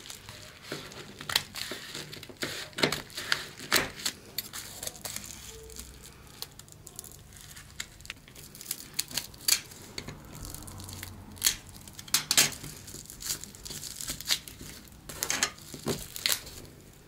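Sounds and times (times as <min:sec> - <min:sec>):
craft knife cutting envelope: 0:00.0 - 0:06.0
envelope tearing: 0:00.0 - 0:17.0
paper and padded envelope crinkling: 0:00.0 - 0:17.0.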